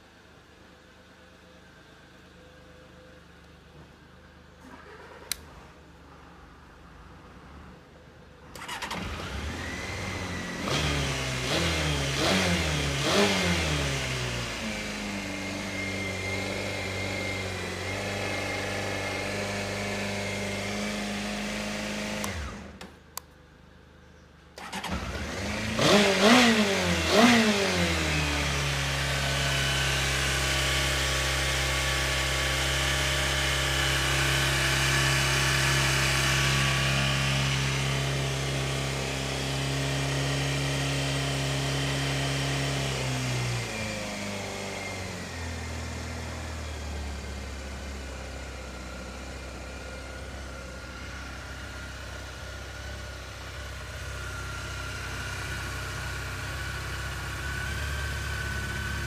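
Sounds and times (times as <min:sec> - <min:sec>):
motorcycle engine revving and idling: 0:00.0 - 0:59.0.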